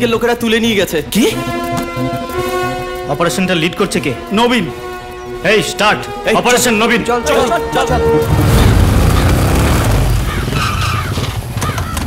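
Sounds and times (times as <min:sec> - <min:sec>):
motorcycle engines running: 0:08.2 - 0:12.0.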